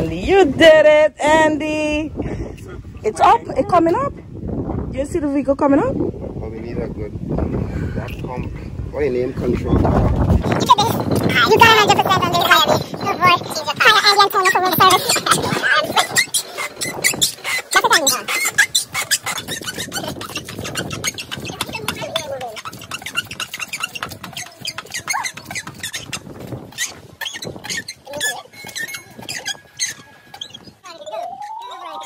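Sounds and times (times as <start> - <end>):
voices: 9.3 - 32.0.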